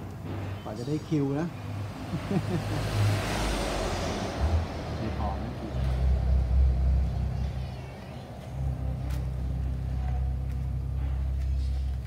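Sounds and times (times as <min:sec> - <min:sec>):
motor vehicle passing: 0:00.0 - 0:12.0
low rumble: 0:03.0 - 0:12.0.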